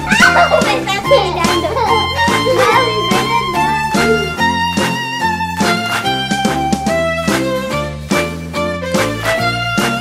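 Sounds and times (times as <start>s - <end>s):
children laughing: 0.0s - 5.0s
background music with bass line: 0.0s - 10.0s.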